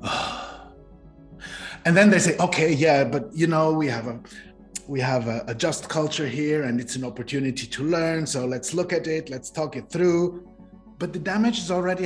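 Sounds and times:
man sighing: 0.0 - 0.7
faint background music: 0.0 - 12.0.

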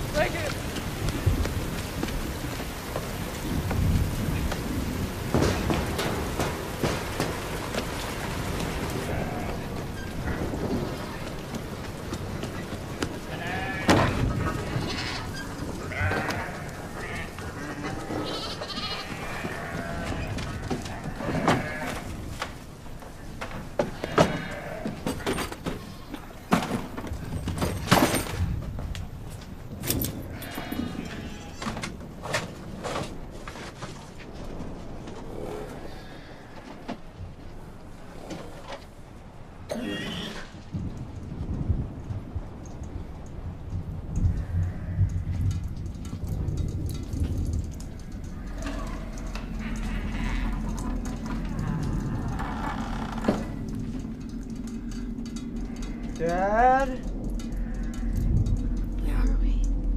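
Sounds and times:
rain hissing: 0.0 - 59.9
sheep bleating: 13.3 - 14.2, 15.9 - 22.1, 48.6 - 51.6
low rumbling background: 40.7 - 59.9.

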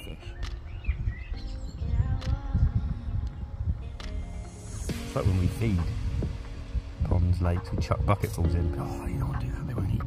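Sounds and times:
music with sustained notes: 0.0 - 10.0.

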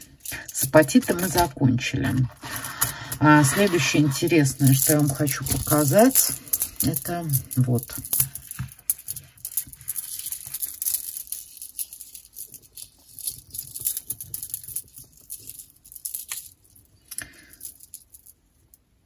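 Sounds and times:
beads clicking and rattling: 0.0 - 19.0.

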